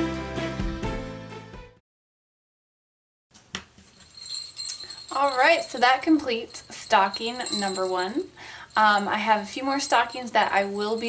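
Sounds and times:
small bells tinkling softly: 0:03.9 - 0:11.0.

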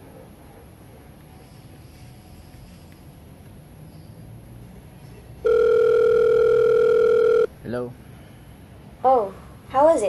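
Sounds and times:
steady telephone line tone: 0:05.4 - 0:07.5.

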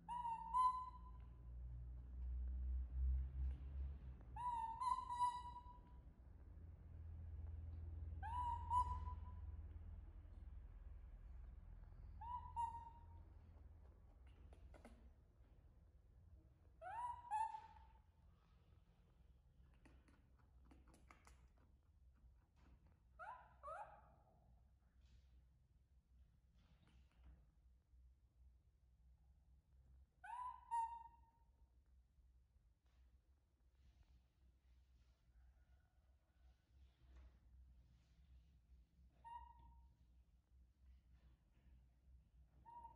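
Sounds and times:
baby monkey coo call: 0:04.4 - 0:05.8, 0:08.2 - 0:09.4, 0:12.2 - 0:13.2, 0:16.8 - 0:17.9.

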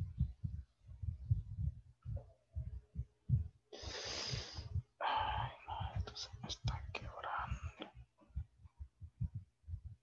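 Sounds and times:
person whispering: 0:05.0 - 0:08.0.

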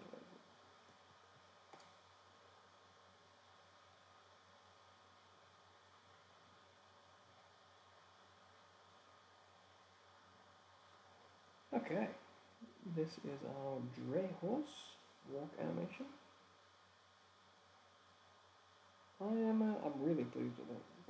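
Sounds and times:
low hum and hiss: 0:00.0 - 0:21.0
faint click: 0:01.7 - 0:02.0.

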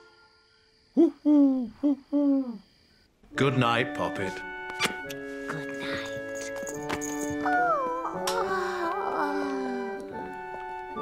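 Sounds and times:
cartoon owl hooting: 0:00.9 - 0:02.6.

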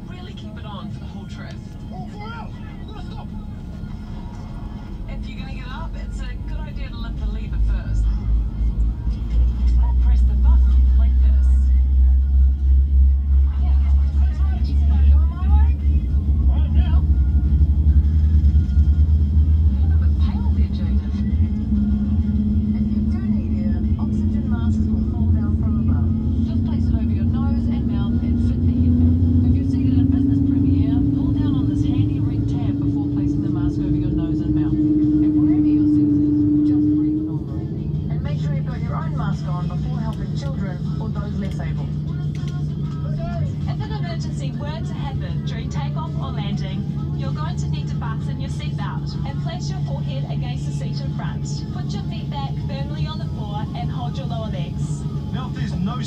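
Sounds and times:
airliner cabin rumble: 0:00.0 - 0:56.0
faint voices and music: 0:00.0 - 0:56.0
whine rising in pitch: 0:14.8 - 0:38.0.

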